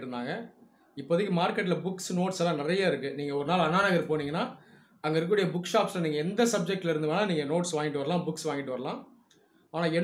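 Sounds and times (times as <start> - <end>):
man talking: 0.0 - 9.1, 9.7 - 10.0.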